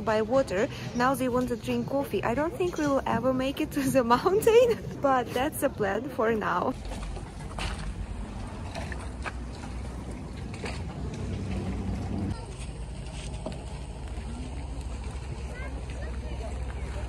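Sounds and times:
steady low rumble: 6.7 - 17.0.

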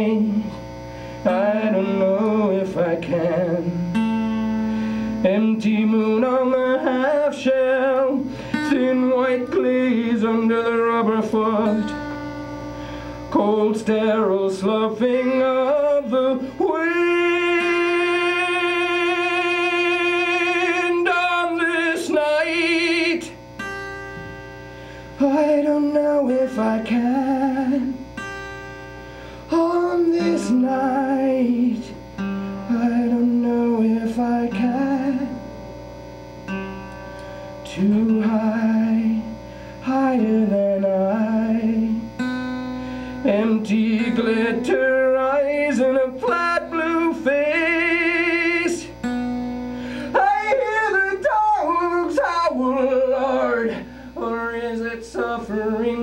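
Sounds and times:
man singing wavering notes: 0.0 - 23.5, 25.2 - 28.1, 29.5 - 35.7, 37.4 - 49.2, 50.1 - 56.0.

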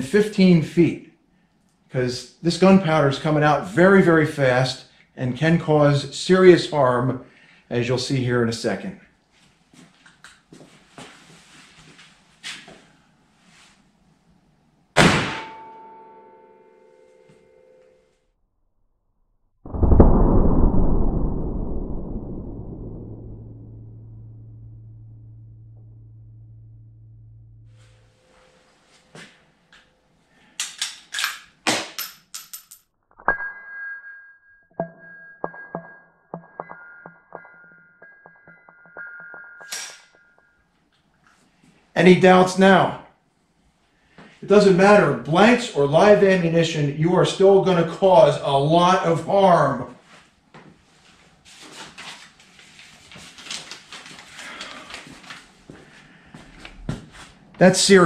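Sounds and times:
sharp rifle shot crack: 15.0 - 15.7
ringing dinging tones: 15.4 - 18.2, 33.3 - 40.7
deep slowed-down boom: 19.7 - 28.1.

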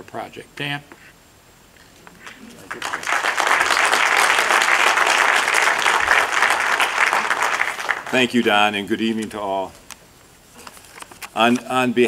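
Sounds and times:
audience applauding: 2.2 - 8.4.

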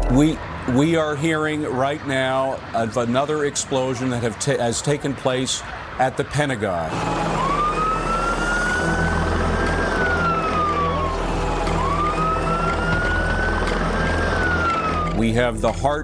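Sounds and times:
siren wailing: 0.0 - 15.4.

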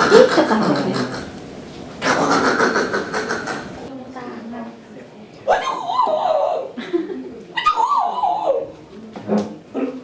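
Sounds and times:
baby squealing: 5.5 - 6.7.

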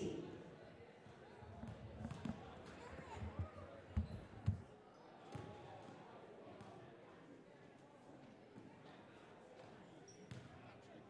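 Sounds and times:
faint background chatter: 0.0 - 11.0.

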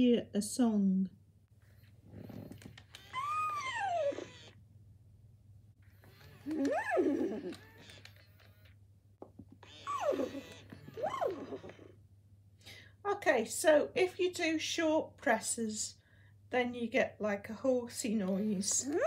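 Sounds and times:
toy horse whinny from speaker: 3.0 - 4.6, 9.6 - 12.0.

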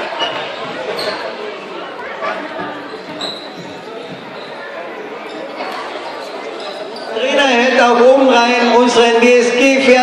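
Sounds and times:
crowd talking and calling: 0.0 - 10.0.

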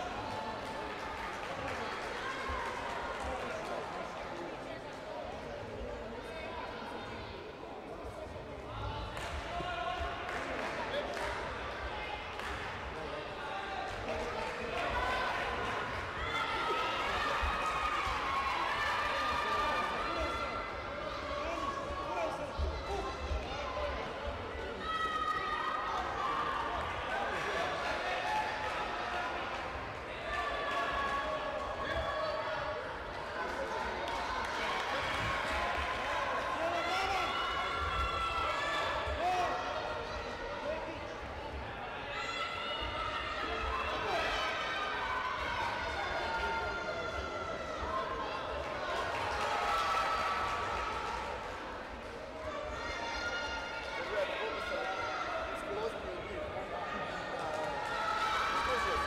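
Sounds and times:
voices shouting in hall: 13.2 - 59.0.

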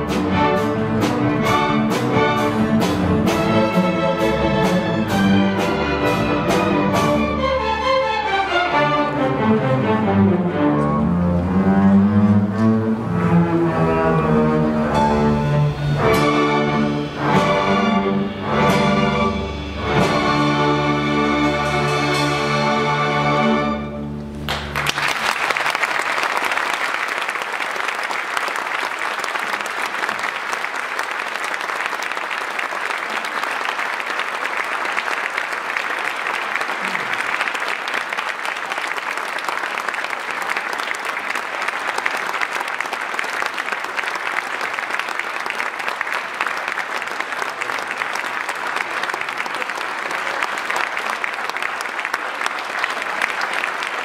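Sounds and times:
audience applauding: 24.4 - 54.0.

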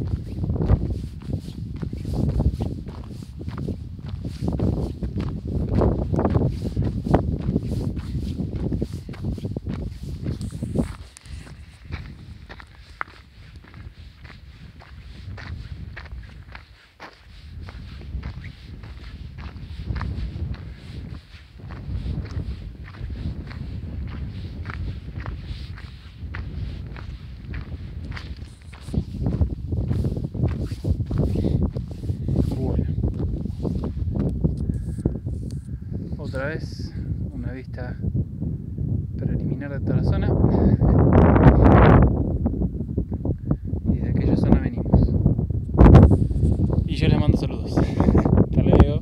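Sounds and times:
footsteps crunching on gravel: 0.0 - 35.4.

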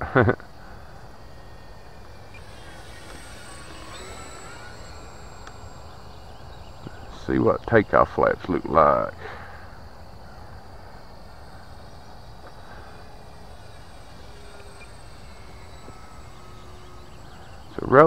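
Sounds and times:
model plane motor whine: 0.0 - 18.0
outdoor hiss: 0.0 - 18.0.

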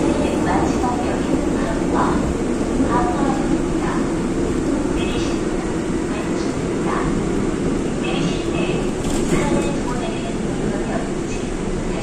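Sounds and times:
faint announcement voice: 0.0 - 12.0
train rumble inside passenger car: 0.0 - 12.0.

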